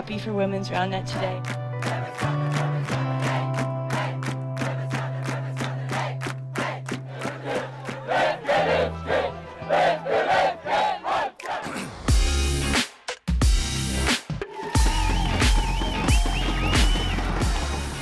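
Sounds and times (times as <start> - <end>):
crowd shouting a chant: 2.9 - 11.9
background music with steady beat: 12.0 - 18.0.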